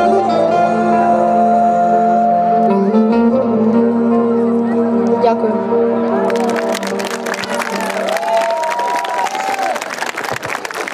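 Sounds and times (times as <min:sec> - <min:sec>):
musical accompaniment: 0:00.0 - 0:09.8
audience applauding: 0:06.1 - 0:10.9.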